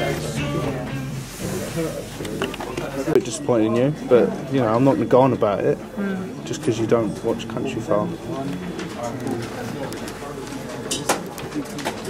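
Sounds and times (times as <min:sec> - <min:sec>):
low indistinct voices: 0:00.0 - 0:12.0.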